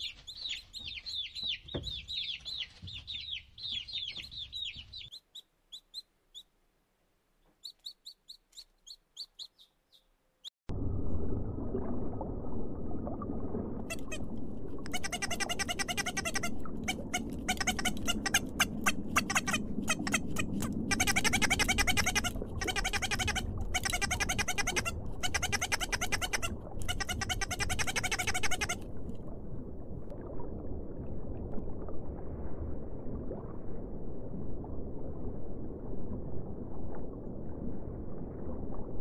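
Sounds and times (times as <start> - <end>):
duckling peeping: 0.0 - 6.5, 7.6 - 10.5, 14.9 - 28.8.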